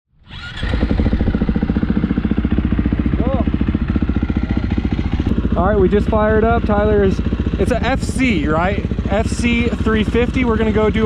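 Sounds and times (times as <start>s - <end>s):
motorcycle engine idling: 0.3s - 11.0s.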